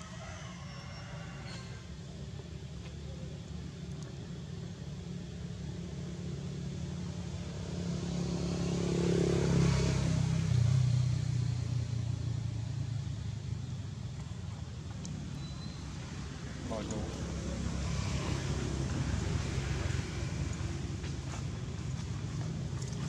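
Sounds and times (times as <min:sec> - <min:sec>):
vehicle engine passing by: 0:04.3 - 0:23.0.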